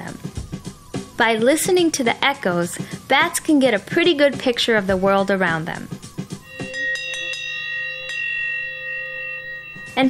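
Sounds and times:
hand bell ringing: 6.4 - 10.0.

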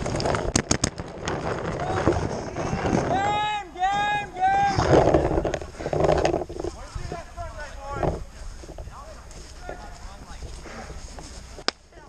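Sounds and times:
rustling: 0.0 - 12.0
wind-like noise: 0.0 - 12.0
player shouting calls: 3.0 - 5.4.

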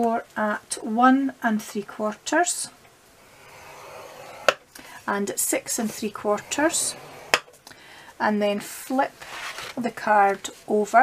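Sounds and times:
stylus scraping cardstock: 3.3 - 5.0, 5.6 - 7.6.

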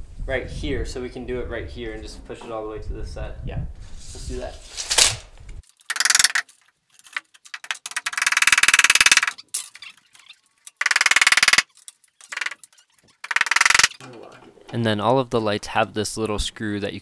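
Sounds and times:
metallic clicking and rattling: 5.6 - 14.5.

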